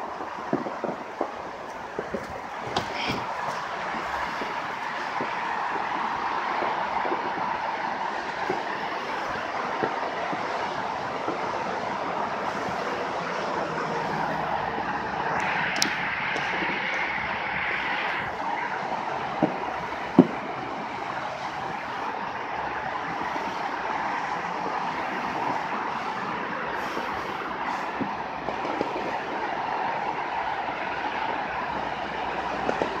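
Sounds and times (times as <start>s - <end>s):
distant fireworks popping: 0.0s - 33.0s
distant traffic hum: 0.0s - 33.0s.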